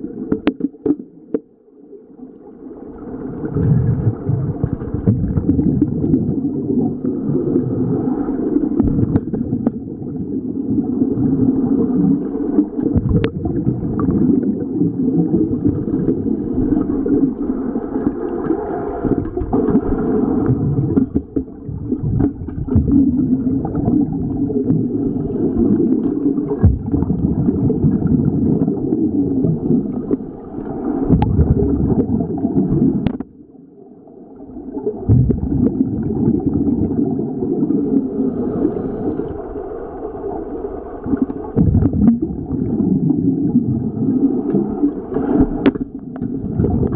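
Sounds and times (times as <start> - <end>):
underwater water gurgling: 0.0 - 46.9.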